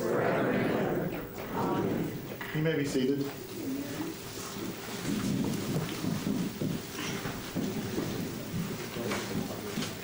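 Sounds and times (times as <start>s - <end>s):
low indistinct voices: 0.0s - 2.6s, 3.2s - 10.0s
people sitting down in chairs: 0.0s - 10.0s
shuffling and rustling: 3.3s - 10.0s.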